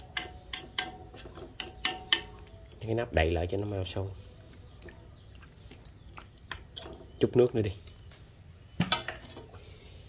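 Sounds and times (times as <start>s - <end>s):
chopsticks tapping a metal wok: 0.0s - 2.4s.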